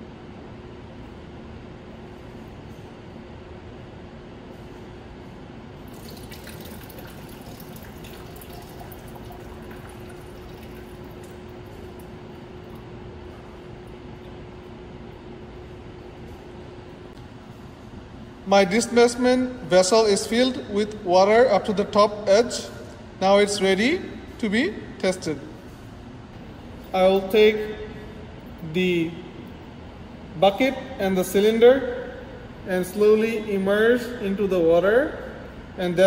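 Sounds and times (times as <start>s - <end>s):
water pouring into metal vessel: 5.9s - 11.5s
water trickling from spout: 5.9s - 12.8s.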